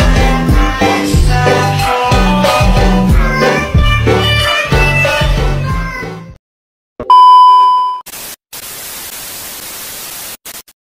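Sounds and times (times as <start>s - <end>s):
tv static hiss: 8.1s - 10.8s.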